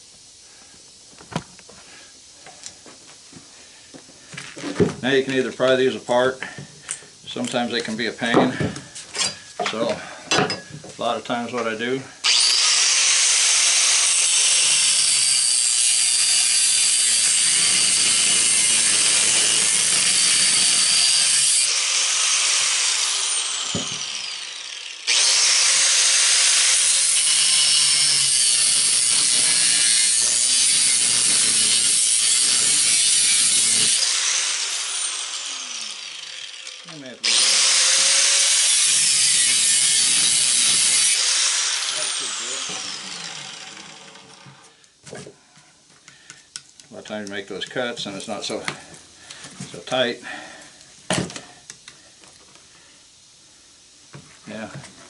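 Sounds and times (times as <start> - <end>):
angle grinder cutting steel: 12.2 - 44.7.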